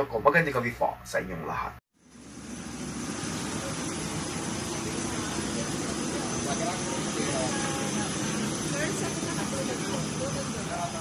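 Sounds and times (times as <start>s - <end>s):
airliner cabin hum: 2.1s - 11.0s.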